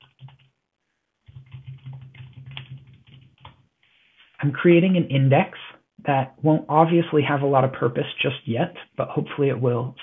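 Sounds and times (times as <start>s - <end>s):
typing on computer keyboard: 0.0s - 0.5s, 1.2s - 3.6s.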